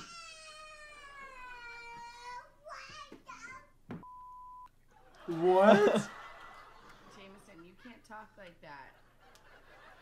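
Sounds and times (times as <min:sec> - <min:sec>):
child's voice: 0:00.0 - 0:03.8
censor bleep: 0:04.0 - 0:04.7.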